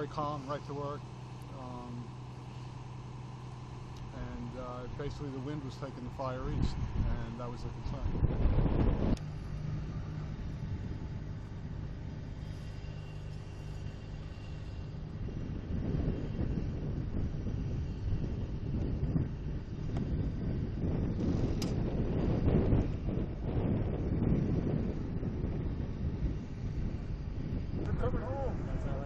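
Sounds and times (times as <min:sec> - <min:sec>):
fire truck engines running: 0:00.0 - 0:29.0
uneven low rumble: 0:03.8 - 0:29.0.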